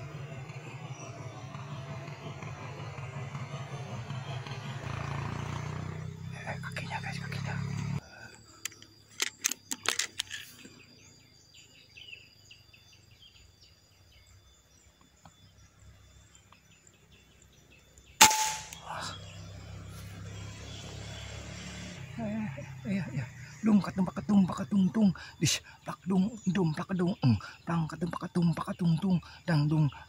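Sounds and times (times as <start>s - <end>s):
bird chirps: 0.0s - 30.0s
sharp clicks: 8.6s - 10.4s
air rifle shot: 18.2s - 18.8s.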